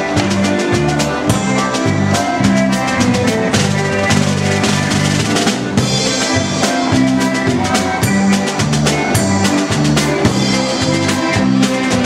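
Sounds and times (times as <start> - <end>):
bass guitar: 0.0 - 12.0
concertina: 0.0 - 12.0
drum kit with cymbals: 0.0 - 12.0.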